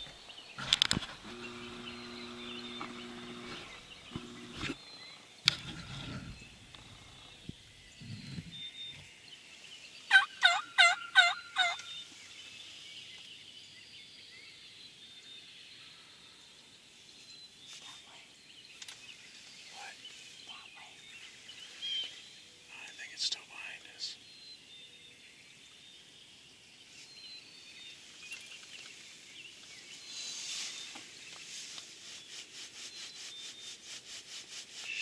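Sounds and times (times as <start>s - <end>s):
songbirds chirping: 0.0s - 35.0s.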